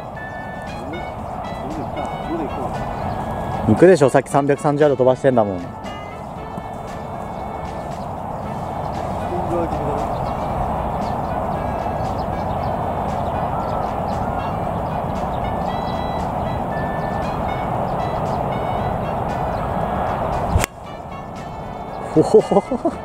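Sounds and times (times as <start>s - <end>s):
background music: 0.0s - 23.0s.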